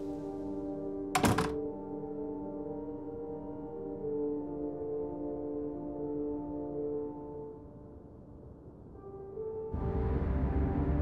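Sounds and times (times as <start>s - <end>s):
sustained film score chord: 0.0s - 11.0s
door shutting: 1.2s - 1.6s.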